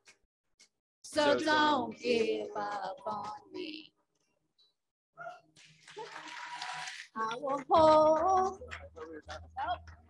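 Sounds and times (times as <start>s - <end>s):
audience clapping and cheering: 5.8s - 10.0s.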